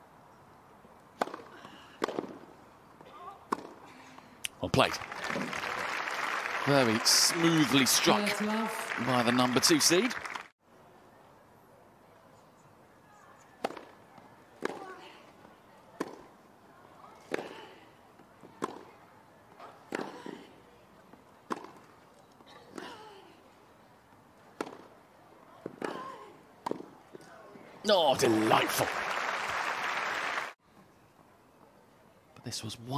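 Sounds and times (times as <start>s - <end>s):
tennis ball hit by rackets: 1.2s - 2.5s, 3.5s - 3.8s, 13.6s - 14.0s, 16.0s - 16.3s, 18.6s - 18.9s, 19.8s - 20.4s, 21.5s - 21.8s, 24.6s - 24.9s, 26.6s - 27.0s.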